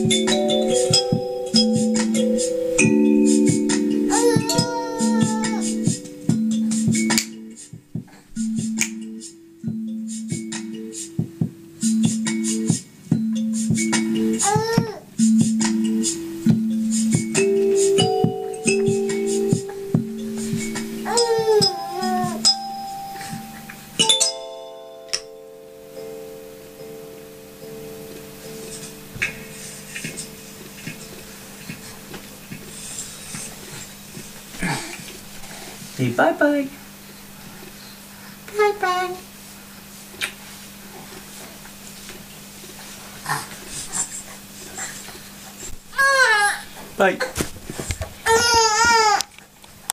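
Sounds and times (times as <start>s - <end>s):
kalimba tines plucked: 0.0s - 31.9s
faint small noises: 0.0s - 49.9s
baby crying: 4.1s - 6.0s, 14.4s - 15.0s, 20.7s - 22.5s, 45.9s - 46.7s, 48.2s - 49.3s.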